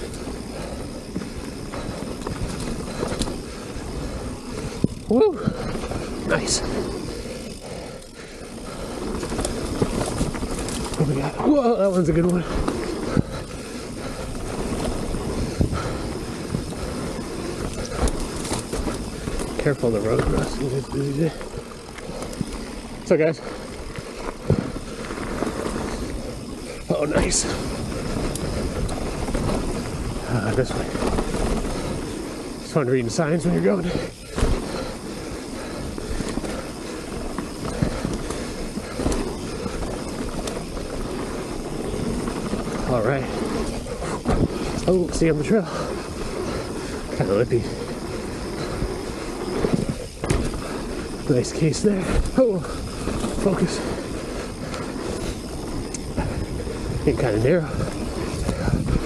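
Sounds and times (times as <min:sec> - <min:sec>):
bike knocking over bumps: 0:00.0 - 0:32.6, 0:33.2 - 0:56.5
bike rattling: 0:00.0 - 0:59.0
bike tyres rolling on dirt: 0:00.0 - 0:59.0.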